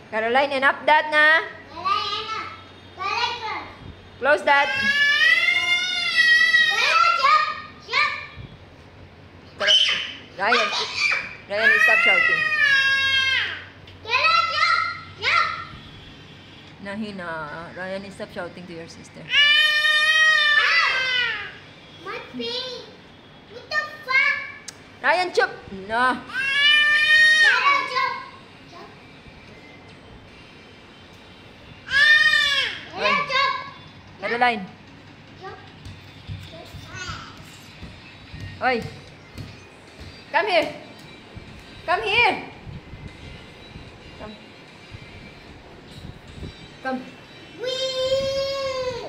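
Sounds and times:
child squealing: 9.6 - 13.6, 19.3 - 21.6, 26.3 - 27.9.

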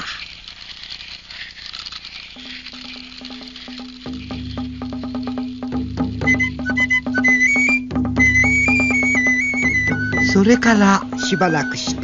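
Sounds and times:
rapid clicking percussion: 0.0 - 12.0
rice pouring patter: 0.0 - 12.0
high whistle-like melody: 6.0 - 12.0.

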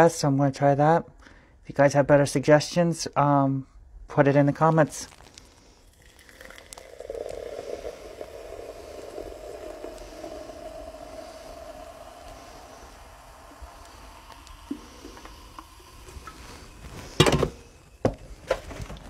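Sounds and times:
fizzy liquid pouring into jar: 4.6 - 18.0.

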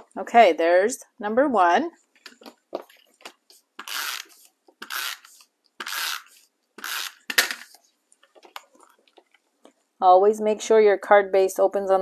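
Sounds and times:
tape runner rasping strokes: 3.8 - 7.4.

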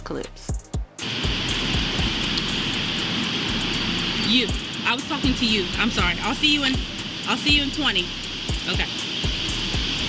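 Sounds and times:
high-pitched hiss: 1.0 - 10.0.

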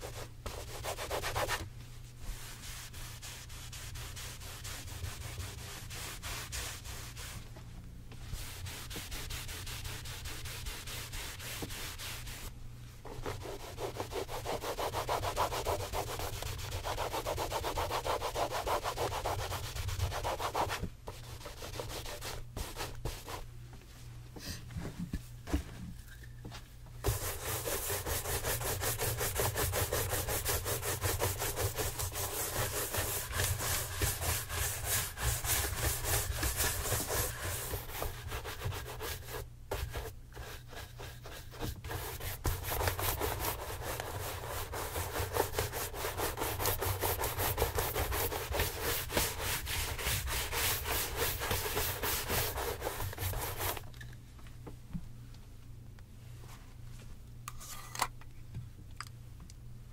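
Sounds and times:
shoe brush scrubbing leather: 13.2 - 20.7, 27.0 - 53.8.

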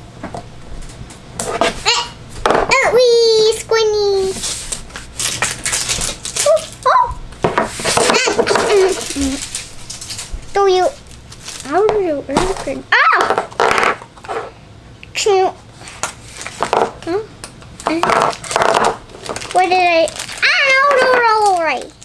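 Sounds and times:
child vocalizing: 6.4 - 7.2, 20.4 - 21.8
plastic toy capsule clicks and rustles: 17.8 - 22.0.

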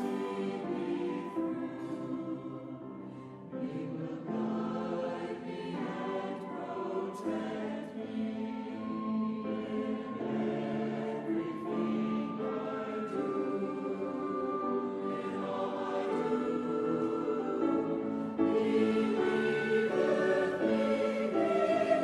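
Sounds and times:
choir singing slow music: 0.0 - 22.0.

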